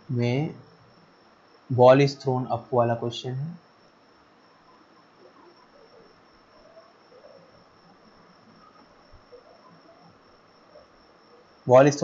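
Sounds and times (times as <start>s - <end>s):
low background hiss: 0.0s - 12.0s
steady high-pitched tone: 0.0s - 12.0s.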